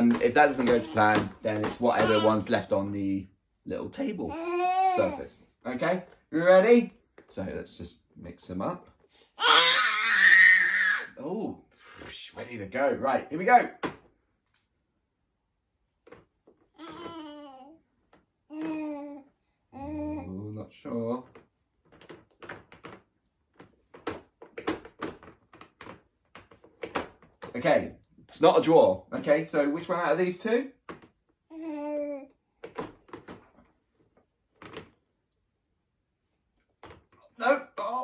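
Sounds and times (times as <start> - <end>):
baby squealing: 2.0 - 2.5, 4.3 - 5.3, 9.4 - 11.1.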